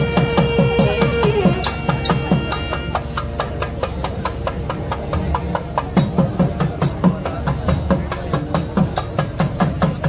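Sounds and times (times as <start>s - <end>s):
temple percussion fast strikes: 0.0s - 10.0s.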